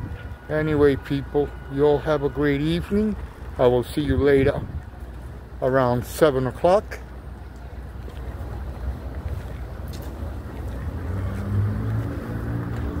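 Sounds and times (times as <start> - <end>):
wind on microphone: 0.0 - 0.8, 4.1 - 5.0
street traffic rumble: 0.0 - 13.0
vehicle engine hum: 0.0 - 13.0.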